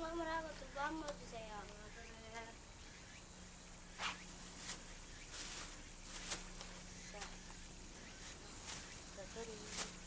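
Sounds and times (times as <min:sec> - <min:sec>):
faint low hum: 0:00.0 - 0:10.0
rustling noises: 0:04.0 - 0:07.6, 0:08.2 - 0:10.0.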